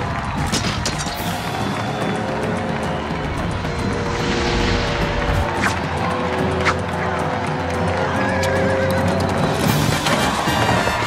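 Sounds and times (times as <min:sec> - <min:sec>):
dramatic orchestral music: 0:00.0 - 0:11.0.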